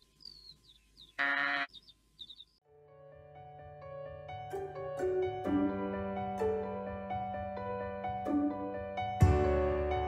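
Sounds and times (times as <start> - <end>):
small birds chirping: 0.0 - 2.6.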